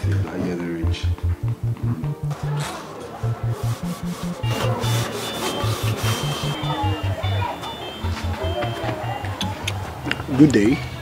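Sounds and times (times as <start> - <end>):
background music with bass beat: 0.0 - 9.8.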